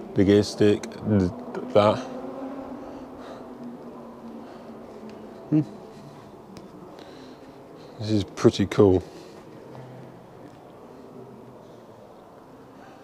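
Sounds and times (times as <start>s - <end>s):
low indoor hum: 0.0s - 13.0s
person humming hmm: 5.5s - 5.9s.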